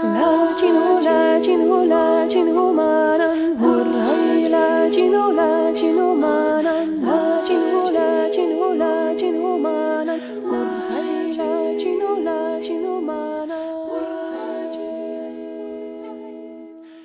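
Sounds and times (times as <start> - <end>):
women humming in harmony: 0.0 - 16.9.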